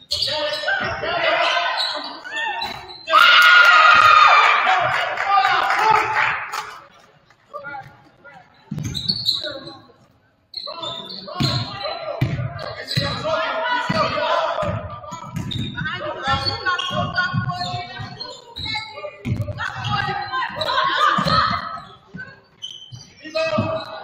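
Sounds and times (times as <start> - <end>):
people calling out: 15.8 - 22.4.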